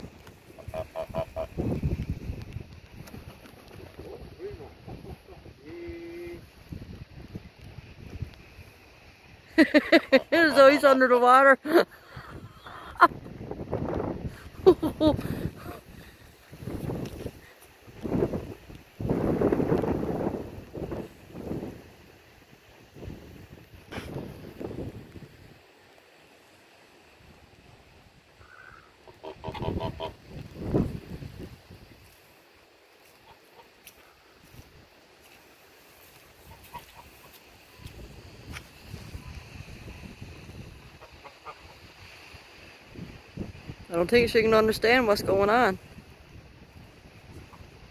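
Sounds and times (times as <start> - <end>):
ducks quacking: 0.5 - 1.6, 28.5 - 30.2, 33.2 - 33.8, 40.9 - 41.8.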